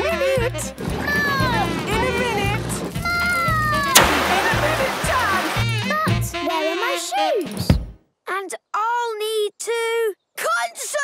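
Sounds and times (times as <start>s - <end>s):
fire extinguisher hissing: 3.9s - 5.7s.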